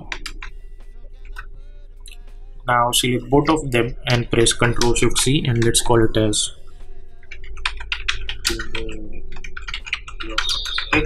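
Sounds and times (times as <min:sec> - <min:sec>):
computer keyboard typing: 0:07.3 - 0:11.0.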